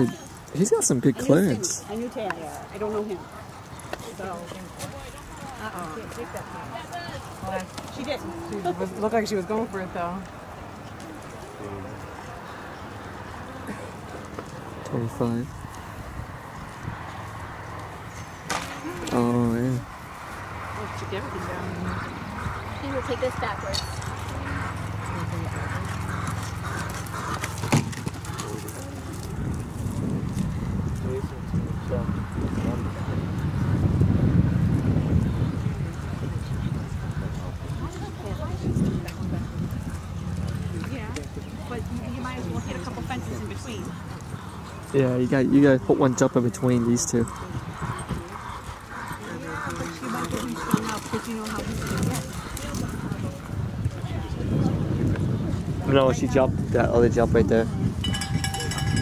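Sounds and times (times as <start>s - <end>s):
people talking indistinctly: 0.0s - 16.9s, 17.7s - 34.2s, 34.8s - 59.0s
horse cantering on sand: 0.0s - 56.8s, 57.6s - 59.0s
horse hoofbeats on sand: 21.0s - 31.4s.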